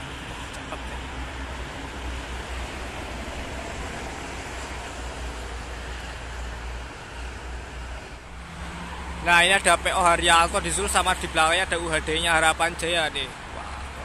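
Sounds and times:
bus passing: 0.0 - 14.0
road traffic rushing: 0.0 - 14.0.

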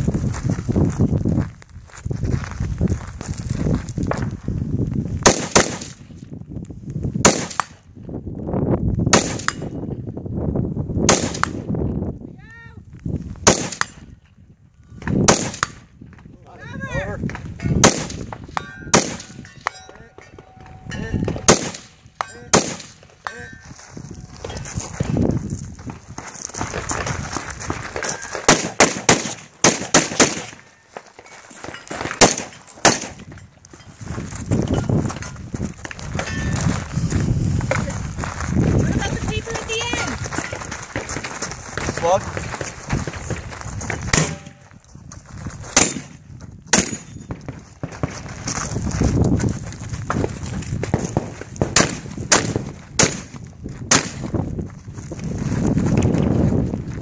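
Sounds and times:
rifle shots cracking: 5.2 - 6.0, 7.2 - 7.8, 9.1 - 9.6, 11.1 - 11.6, 13.4 - 14.0, 15.2 - 15.8, 17.8 - 18.3, 18.9 - 19.4, 21.4 - 23.1, 28.4 - 30.6, 32.2 - 33.2, 44.1 - 44.6, 45.8 - 47.1, 51.7 - 53.3, 53.9 - 54.2.

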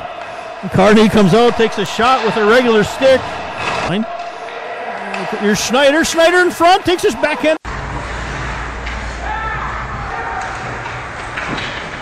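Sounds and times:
ice rink background noise: 0.0 - 12.0
man commentating: 0.6 - 4.2, 5.2 - 7.6.

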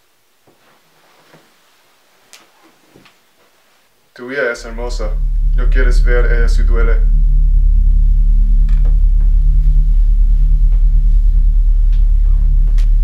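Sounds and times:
low steady musical drone: 4.5 - 13.0.

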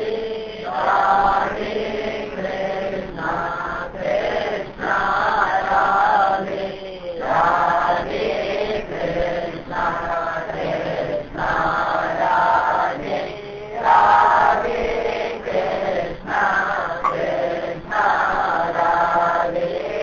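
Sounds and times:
person singing a chant: 0.0 - 20.0.

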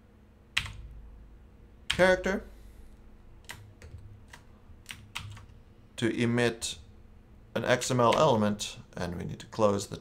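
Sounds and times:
faint keyboard keystrokes: 3.4 - 5.6.

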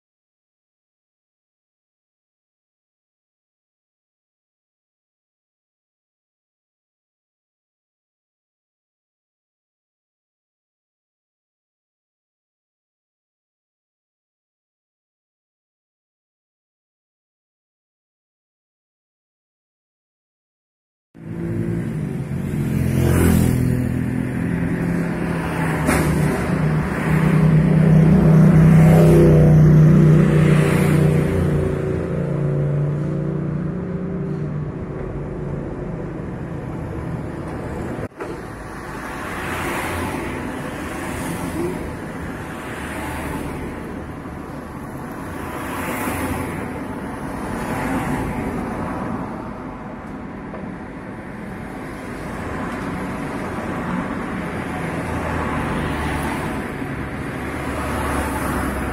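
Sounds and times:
cars passing: 21.2 - 58.9.

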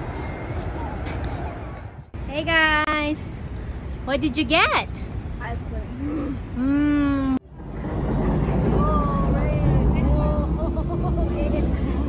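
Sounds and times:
steady low rumble: 5.0 - 12.0.

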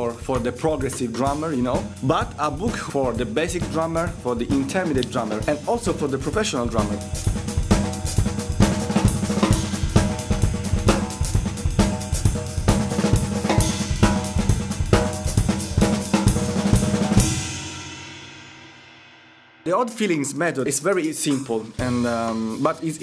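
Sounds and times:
drum kit playing a groove: 0.0 - 19.0, 19.6 - 23.0
cymbal ringing out: 16.3 - 20.4.

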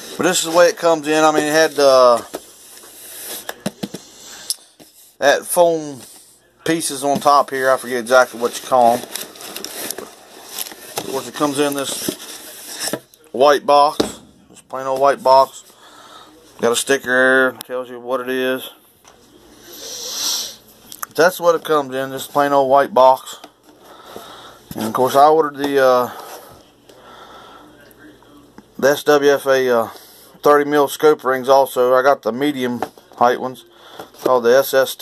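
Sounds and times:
breath close to microphone: 15.7 - 16.4.

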